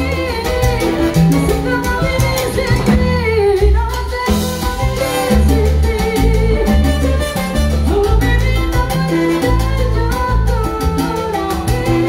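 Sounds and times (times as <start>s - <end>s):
salsa band playing: 0.0s - 12.0s
woman singing: 0.0s - 12.0s.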